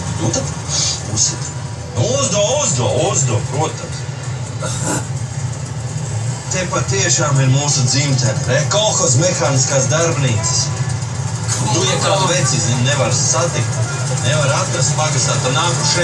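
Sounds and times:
low vehicle engine hum: 0:00.0 - 0:16.0
voices over loudspeakers: 0:06.6 - 0:16.0.

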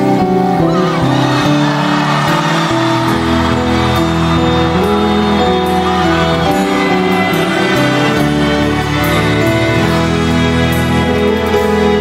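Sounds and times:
rock band playing sustained chords: 0:00.0 - 0:12.0.

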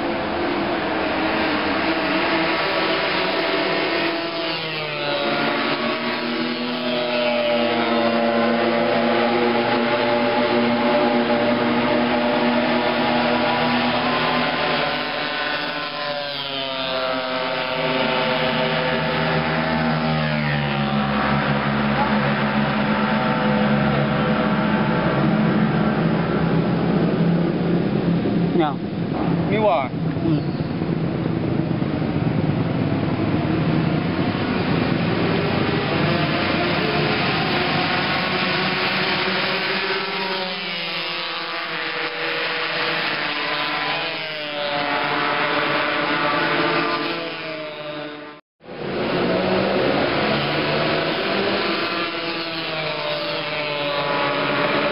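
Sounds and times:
motorcycle engines racing: 0:00.0 - 0:54.9.

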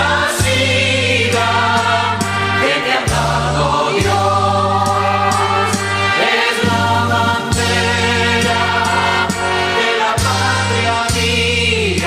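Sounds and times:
bass line: 0:00.0 - 0:12.0
choir singing held notes: 0:00.0 - 0:12.0.

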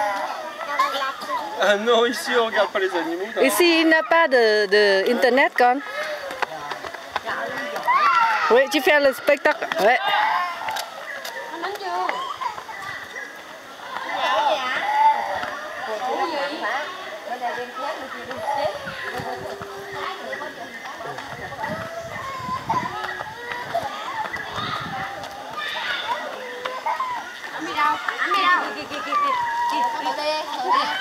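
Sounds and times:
children's voices: 0:00.0 - 0:02.0, 0:05.1 - 0:31.0
background chatter: 0:00.0 - 0:31.0.

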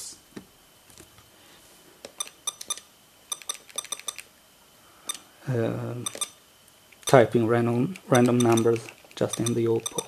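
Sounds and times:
short high electronic key beeps: 0:02.2 - 0:04.2, 0:06.0 - 0:06.4, 0:09.3 - 0:10.0.

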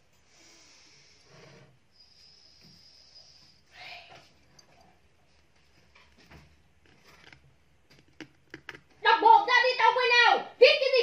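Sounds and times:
plastic stems rustling: 0:05.3 - 0:09.0.

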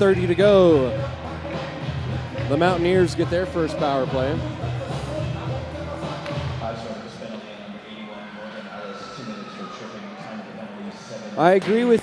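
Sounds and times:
crowd voices in arena: 0:00.0 - 0:12.0.

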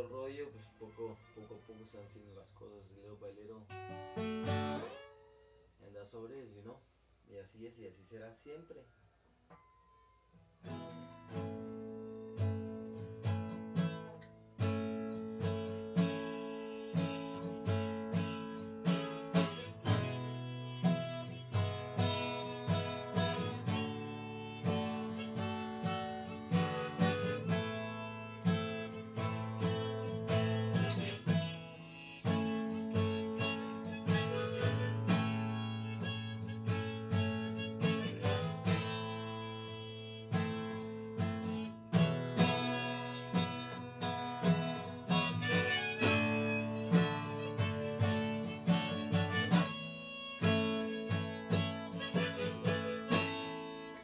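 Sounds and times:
strummed acoustic guitar: 0:03.7 - 0:05.4, 0:10.6 - 0:54.0
harmonica long held notes: 0:12.0 - 0:54.0.

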